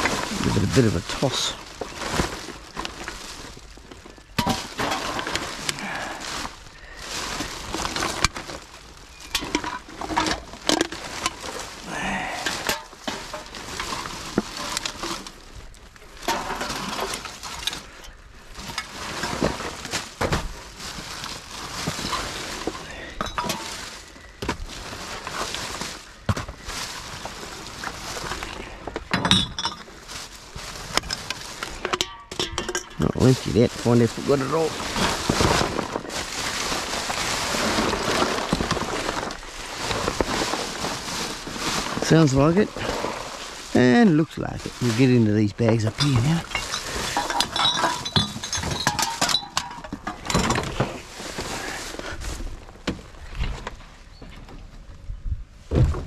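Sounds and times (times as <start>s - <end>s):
plastic bags rustling: 0.0s - 54.2s
bottles and cans clinking: 29.0s - 29.9s, 31.8s - 34.0s, 46.0s - 51.0s.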